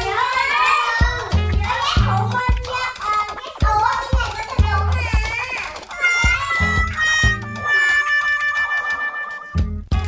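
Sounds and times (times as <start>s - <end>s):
music with bass beat: 0.0s - 8.4s, 9.5s - 10.0s.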